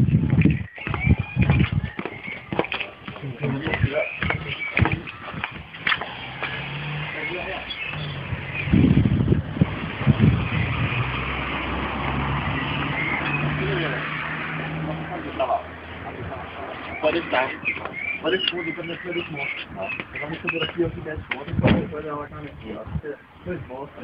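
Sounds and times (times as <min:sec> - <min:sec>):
voices in background: 0:02.4 - 0:05.7.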